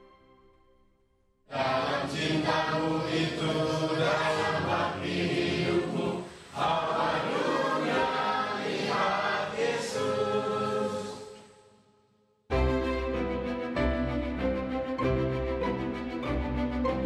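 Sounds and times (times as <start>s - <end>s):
group singing a hymn: 1.5s - 11.6s.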